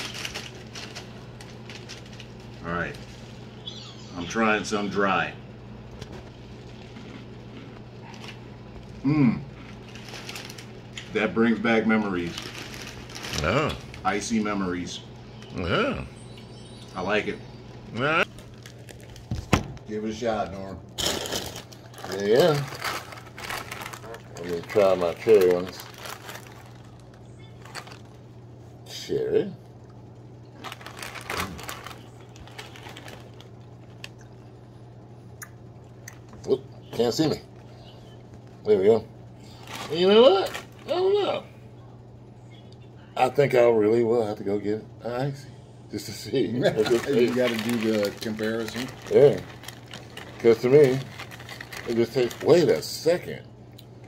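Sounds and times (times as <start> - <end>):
plastic bag crinkling: 0.0 - 3.6, 6.0 - 15.7, 18.2 - 28.4, 30.5 - 34.6, 38.8 - 41.2, 46.6 - 53.1
steady low hum: 0.0 - 54.0
cereal being chewed: 5.9 - 11.1, 46.8 - 52.6
cereal clicks and crunches: 20.4 - 28.2, 30.5 - 34.3, 46.8 - 52.9.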